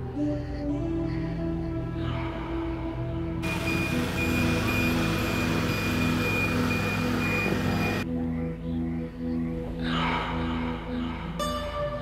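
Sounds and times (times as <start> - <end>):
background music: 0.0 - 12.0
aircraft engine rushing and whining: 3.4 - 8.0.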